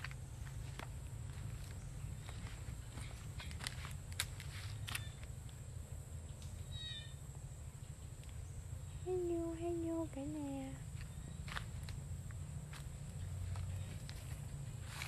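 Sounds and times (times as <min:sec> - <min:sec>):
footsteps through plants: 0:00.0 - 0:05.2, 0:11.0 - 0:12.0, 0:12.7 - 0:15.0
steady low rumble: 0:00.0 - 0:15.0.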